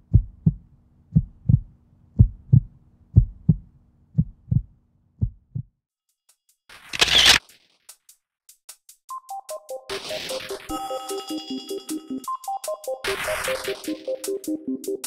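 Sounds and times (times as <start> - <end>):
heartbeat thumps: 0.0 - 5.8.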